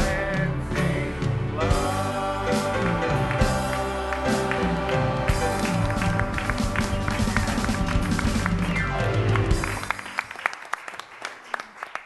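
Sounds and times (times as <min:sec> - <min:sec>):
worship band playing a hymn: 0:00.0 - 0:10.0
hand claps: 0:05.6 - 0:12.0.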